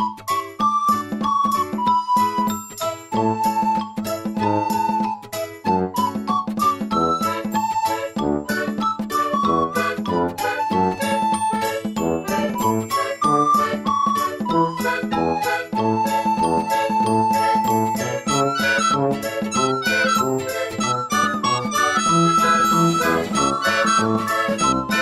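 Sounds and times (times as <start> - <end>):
instrumental music with chiming notes: 0.0 - 25.0.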